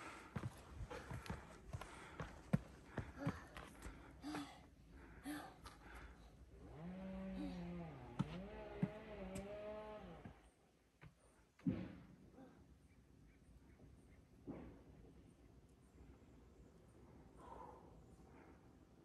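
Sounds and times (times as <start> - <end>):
footsteps on trail steps: 0.0 - 4.1
person's drawn-out vocal sounds: 7.2 - 7.9.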